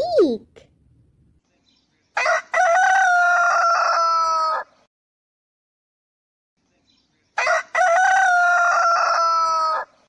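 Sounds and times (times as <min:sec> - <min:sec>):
rooster crowing: 0:02.2 - 0:04.8, 0:07.4 - 0:10.0.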